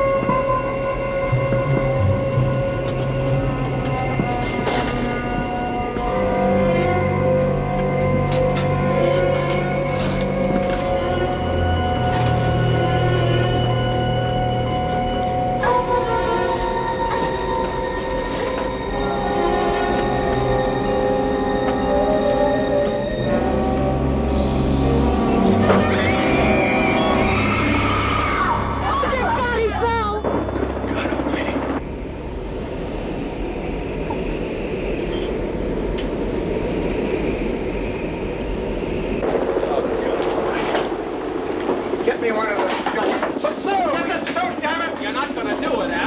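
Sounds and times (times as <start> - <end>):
orchestral suspense music: 0.0 - 42.5
wind and engine roar: 28.6 - 46.0.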